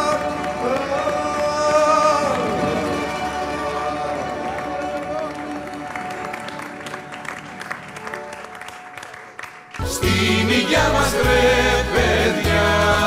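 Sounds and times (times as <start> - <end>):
live band music: 0.0 - 8.7, 9.7 - 13.0
audience applauding: 0.0 - 12.1.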